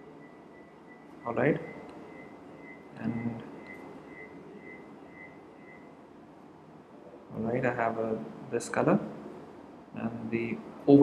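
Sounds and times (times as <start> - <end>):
faint high-pitched pulsing tone: 0.0 - 11.0.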